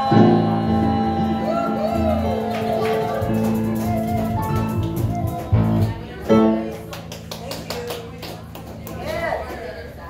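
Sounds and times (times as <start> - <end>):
keyboard and electric bass notes: 0.0 - 7.3.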